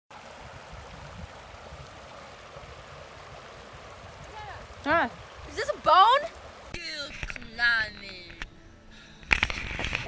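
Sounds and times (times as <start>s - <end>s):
river flowing over gravel: 0.1s - 8.4s, 9.3s - 10.0s.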